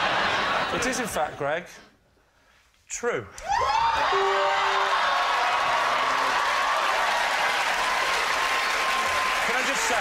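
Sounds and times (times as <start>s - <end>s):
audience applauding: 4.1s - 10.0s.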